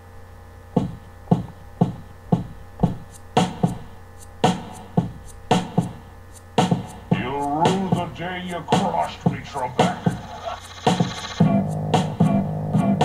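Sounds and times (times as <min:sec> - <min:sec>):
steady electrical hum: 0:00.0 - 0:13.0
drum machine beat: 0:00.8 - 0:13.0.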